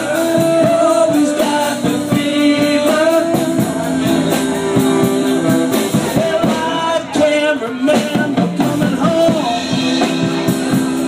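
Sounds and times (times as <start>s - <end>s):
acoustic guitar: 0.0s - 11.0s
drum kit steady beat: 0.0s - 11.0s
person singing: 0.0s - 11.0s.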